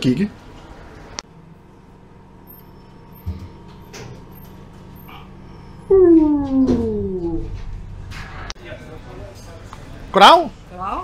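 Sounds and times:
faint background hum: 0:00.0 - 0:11.0
animal cry falling in pitch: 0:05.9 - 0:07.6.

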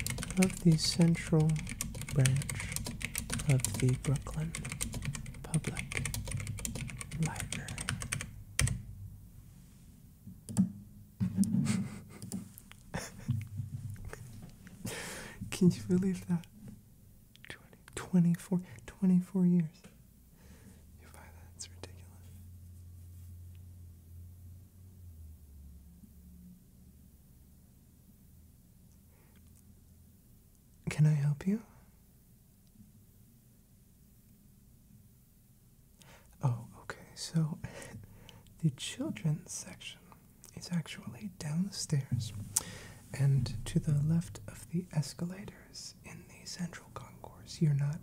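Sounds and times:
steady low hum: 0:00.0 - 0:48.0
faint breathy whisper: 0:00.3 - 0:04.7, 0:05.4 - 0:06.0, 0:07.1 - 0:08.2, 0:17.4 - 0:19.9, 0:20.5 - 0:22.5, 0:30.9 - 0:32.0, 0:36.0 - 0:48.0
man speaking softly: 0:00.3 - 0:04.7, 0:05.4 - 0:06.0, 0:07.2 - 0:07.9, 0:15.5 - 0:16.6, 0:17.5 - 0:19.9, 0:21.0 - 0:22.3, 0:30.8 - 0:31.8, 0:36.4 - 0:38.0, 0:38.6 - 0:42.4, 0:43.1 - 0:48.0.

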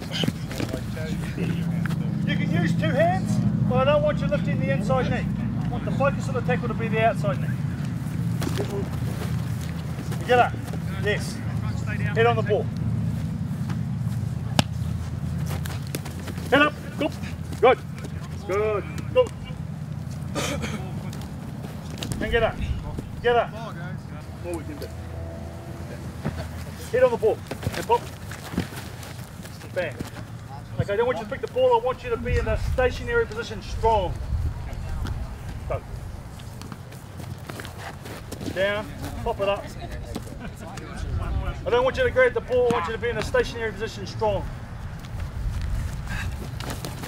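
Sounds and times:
players running on grass: 0:00.0 - 0:24.9, 0:26.0 - 0:47.0
low background rumble: 0:00.0 - 0:26.7
rugby ball slapped in a pass: 0:14.5 - 0:14.8
steady low rumble: 0:19.4 - 0:24.7, 0:31.9 - 0:36.6.

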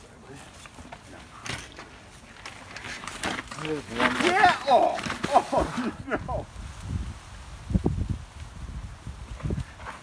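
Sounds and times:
bike tyres rolling over rock and leaves: 0:00.3 - 0:06.0.

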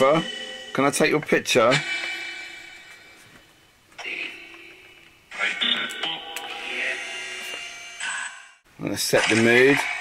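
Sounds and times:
choppy radio voice and music fragments: 0:00.0 - 0:02.2, 0:02.9 - 0:10.0.

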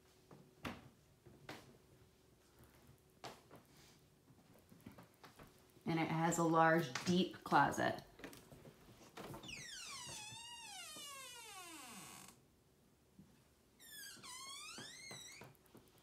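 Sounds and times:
door hinge squeaking: 0:09.4 - 0:12.4, 0:13.8 - 0:15.6.

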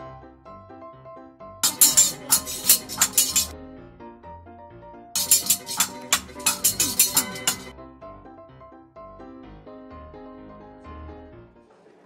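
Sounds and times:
background music: 0:00.0 - 0:12.0
metal scissors clacking: 0:01.6 - 0:03.5, 0:05.2 - 0:07.7.

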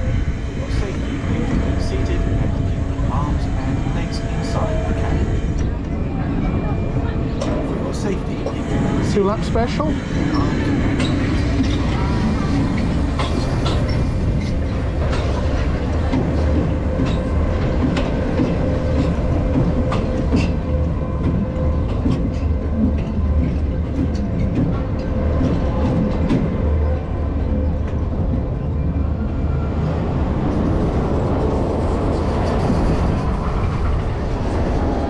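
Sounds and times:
coaster wheels rumbling on rail: 0:00.0 - 0:35.0.

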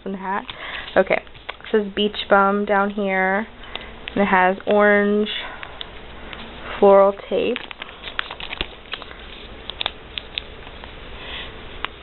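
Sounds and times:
steady low hum: 0:00.0 - 0:12.0
soft plastic rustle: 0:07.4 - 0:11.0.

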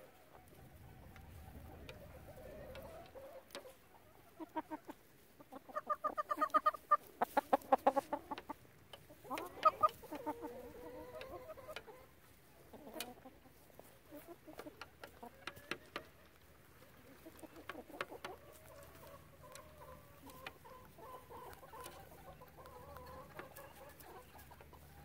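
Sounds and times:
chicken drawn-out call: 0:00.0 - 0:25.0
chickens clucking: 0:00.0 - 0:25.0.

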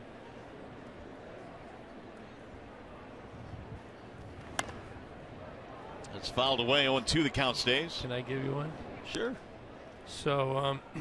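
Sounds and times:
baseball bat crack: 0:04.2 - 0:05.1.

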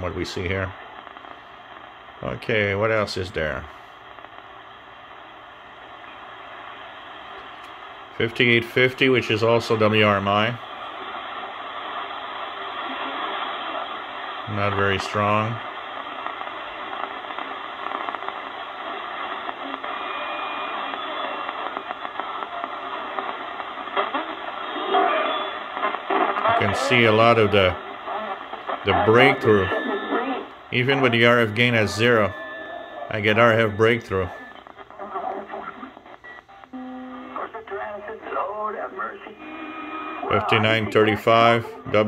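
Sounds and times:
loud static burst: 0:00.0 - 0:36.1, 0:39.5 - 0:42.0
faint radio signals: 0:00.0 - 0:42.0
radio static and hiss: 0:00.0 - 0:42.0
thin radio voice: 0:26.4 - 0:32.4.

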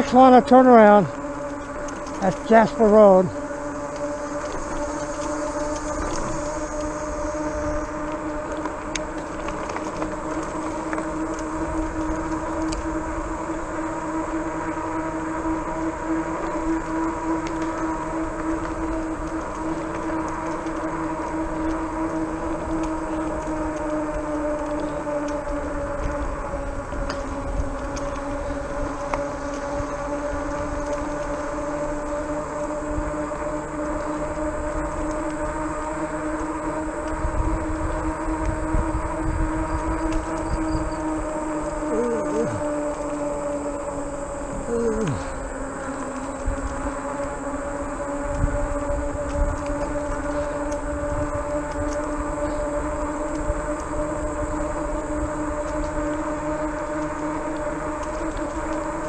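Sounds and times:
e-bike tires and motor humming: 0:00.0 - 0:59.0
low wind rumble: 0:00.0 - 0:59.0.

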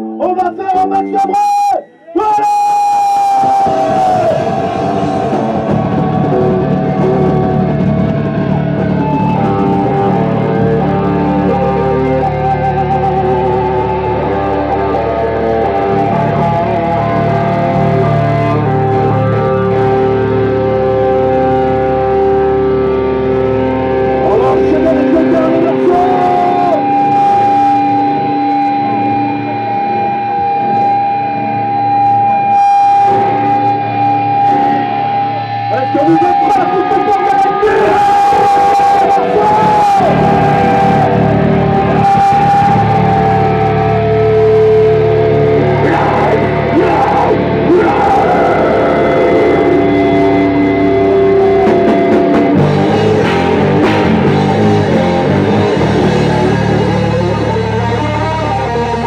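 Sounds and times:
bass guitar: 0:00.0 - 0:59.0
electric guitars ringing: 0:00.0 - 0:59.0
sustained high guitar tone: 0:00.0 - 0:59.0.

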